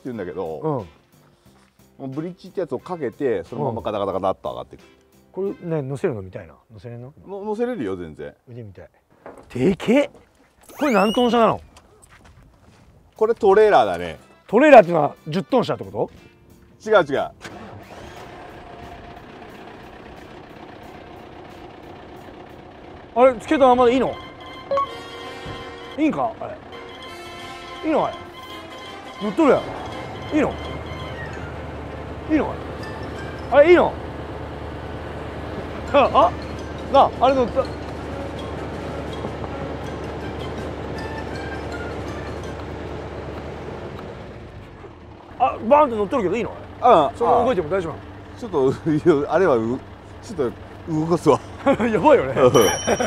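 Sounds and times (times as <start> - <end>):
diesel truck engine idling: 17.0 - 53.0.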